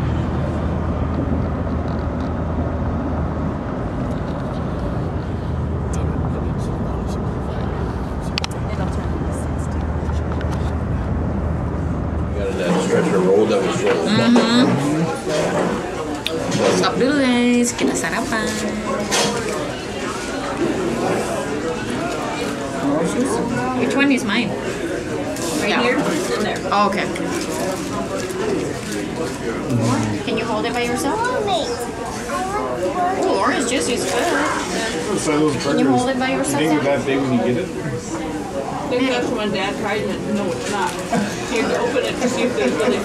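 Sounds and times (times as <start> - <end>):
car engine and tyre rumble: 0.0 - 12.9
restaurant chatter: 0.0 - 43.0
deep voice humming low tone: 29.7 - 30.3.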